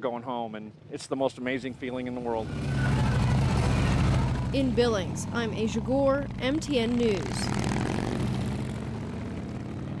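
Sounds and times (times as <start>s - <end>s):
motorcycle engines running: 1.9s - 10.0s.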